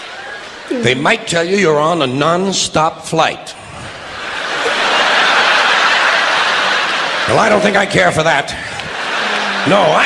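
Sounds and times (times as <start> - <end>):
comedian speaking: 0.7 - 3.6, 7.2 - 10.0
audience laughing and applauding: 3.6 - 10.0.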